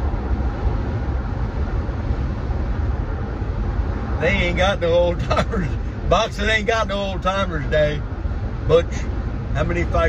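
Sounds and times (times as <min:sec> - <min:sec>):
road and engine noise in car cabin: 0:00.0 - 0:10.0.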